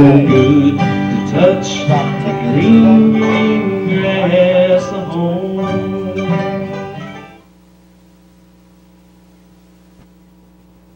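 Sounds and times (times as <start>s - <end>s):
acoustic string band chords: 0.0s - 7.5s
low hum and hiss: 0.0s - 10.9s.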